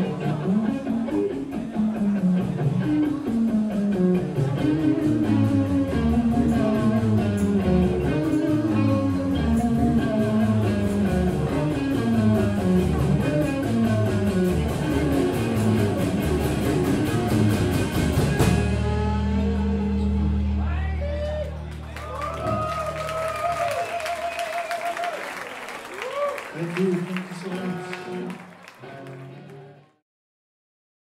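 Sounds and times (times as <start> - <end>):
electric guitar lead: 0.0 - 24.4, 26.7 - 30.0
live rock band playing: 0.0 - 24.5.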